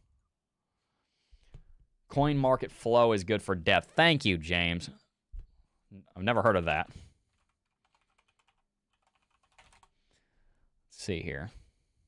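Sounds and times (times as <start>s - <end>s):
typing on computer keyboard: 7.4s - 9.9s.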